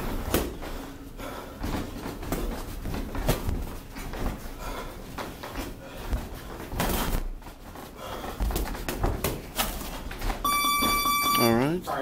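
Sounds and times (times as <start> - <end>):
round timer beep: 10.4 - 11.8.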